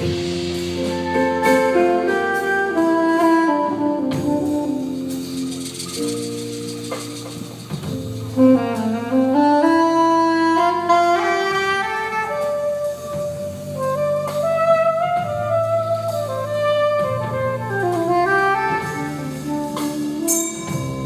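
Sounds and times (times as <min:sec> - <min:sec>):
saxophone melody: 0:00.0 - 0:07.3, 0:07.9 - 0:21.0
drums: 0:00.0 - 0:21.0
walking double bass: 0:00.0 - 0:21.0
congas: 0:04.1 - 0:09.8, 0:16.9 - 0:21.0.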